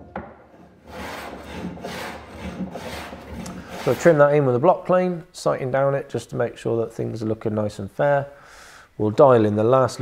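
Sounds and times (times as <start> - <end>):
plane shaving wood: 0.8 - 4.3.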